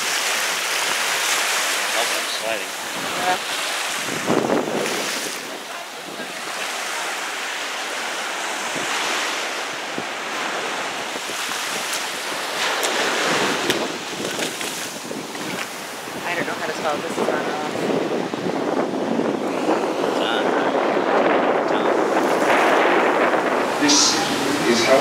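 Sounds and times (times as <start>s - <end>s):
ocean surf on a beach: 0.0s - 25.0s
wind buffeting microphone: 2.9s - 7.3s, 8.3s - 25.0s.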